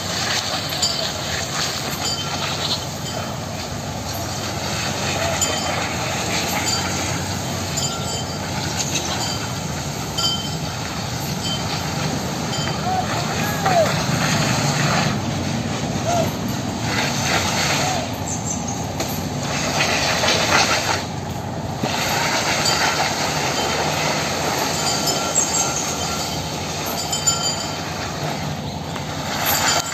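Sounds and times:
tree dragged scraping on ground: 0.0s - 29.9s.

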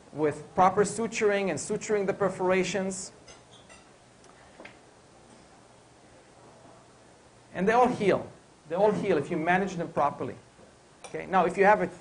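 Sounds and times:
cutlery and tableware clinking: 3.2s - 3.9s.

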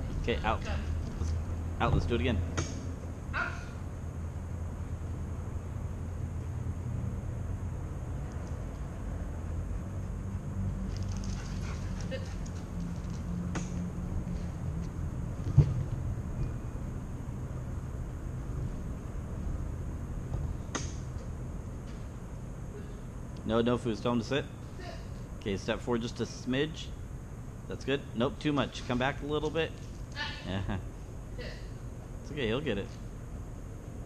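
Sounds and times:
low room hum: 0.0s - 34.0s.

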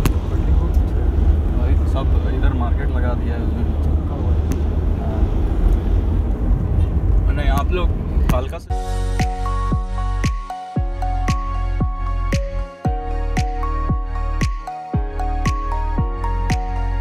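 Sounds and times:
car engine and tyres rumbling: 0.0s - 10.2s.

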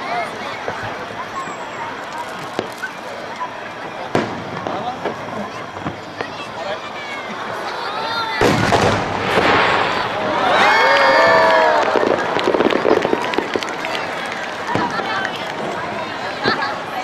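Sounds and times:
spectators' voices: 0.0s - 17.0s
firework crackles: 0.5s - 17.0s
firework shell bursting: 8.4s - 10.3s.

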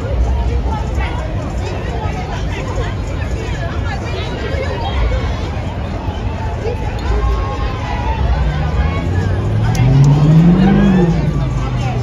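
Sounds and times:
crowd chatter: 0.0s - 12.0s
vehicle engine revving: 8.4s - 12.0s.

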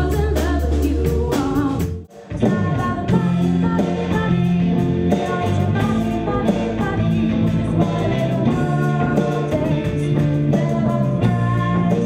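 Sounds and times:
instrumental accompaniment: 0.0s - 12.0s
woman singing a folk song: 5.1s - 12.0s.

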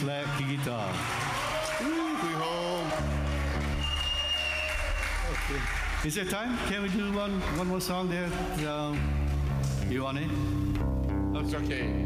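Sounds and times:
audience applauding: 0.0s - 9.9s
man's voice: 5.5s - 9.1s.

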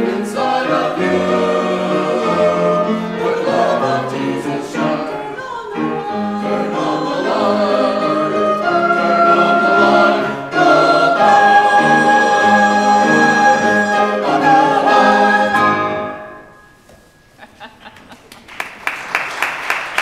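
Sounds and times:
church choir singing: 0.0s - 16.8s.

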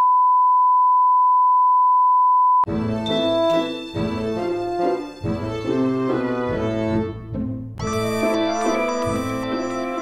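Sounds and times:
steady test tone beep: 7.8s - 10.0s.

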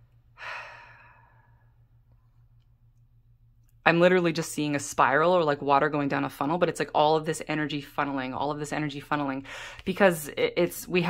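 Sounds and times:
person sighing: 0.4s - 1.6s.

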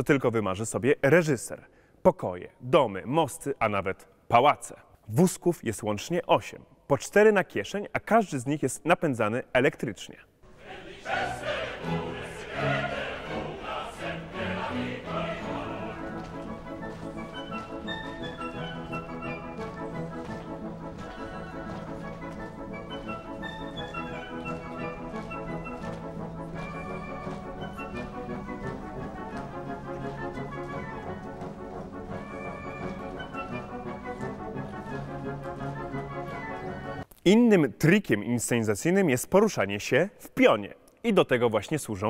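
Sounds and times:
choir singing: 10.4s - 17.0s
opera orchestra and singing: 10.4s - 37.0s.

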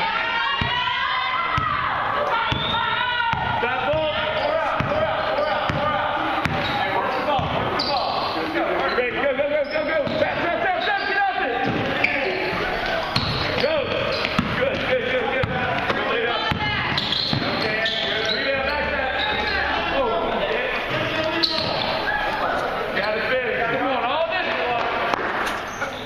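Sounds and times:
people shouting: 0.0s - 8.1s, 15.2s - 18.3s
basketball bouncing on hardwood floor: 14.2s - 17.6s.

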